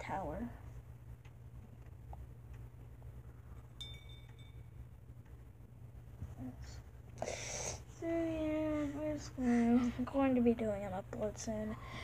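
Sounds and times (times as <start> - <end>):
faint room hum: 0.0 - 12.0
metal chime clink: 3.8 - 4.8.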